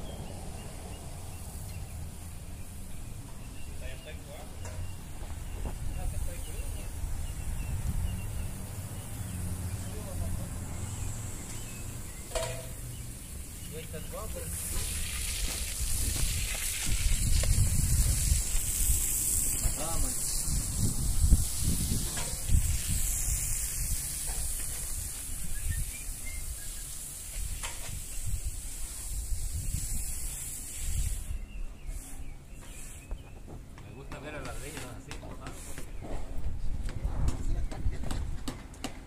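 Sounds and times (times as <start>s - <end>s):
hose spraying water on steps: 0.2s - 36.1s.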